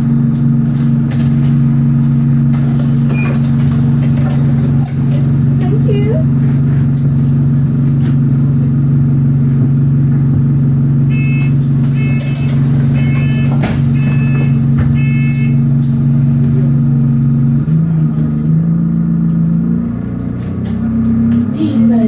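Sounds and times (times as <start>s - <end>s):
bus engine droning: 0.0s - 22.0s
short electronic beeps: 11.1s - 15.6s.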